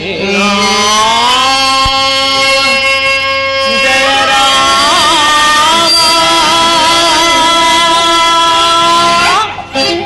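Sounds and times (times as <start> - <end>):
man singing long held note: 0.0 - 10.0.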